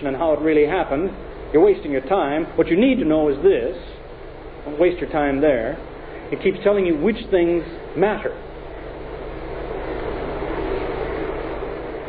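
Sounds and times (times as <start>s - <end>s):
low hum: 0.0s - 12.0s
rushing tape noise: 0.0s - 12.0s.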